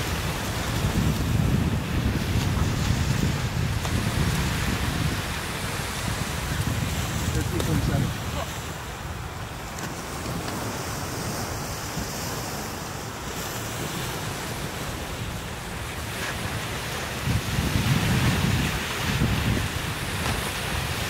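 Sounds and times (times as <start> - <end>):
ocean surf on beach: 0.0 - 21.0
wind buffeting microphone: 0.0 - 21.0.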